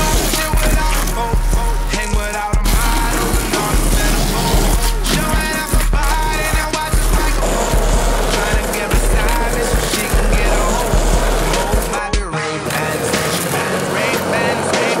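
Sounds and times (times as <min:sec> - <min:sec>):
music with singing: 0:00.0 - 0:15.0
skateboard wheels rolling on asphalt: 0:00.0 - 0:15.0.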